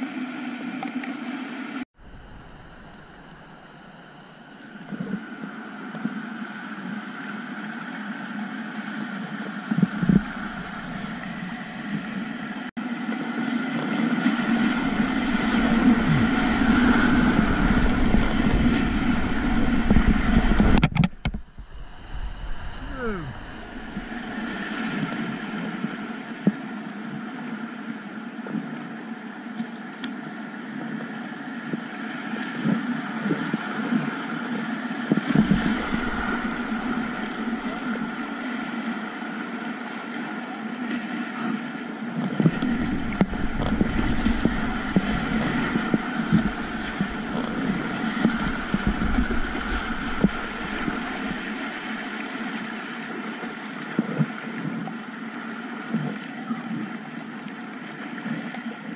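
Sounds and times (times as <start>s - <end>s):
water buffeting microphone: 0.0s - 58.9s
whitewater rushing and splashing: 9.7s - 21.0s, 21.6s - 26.4s, 35.2s - 39.2s, 42.3s - 53.8s.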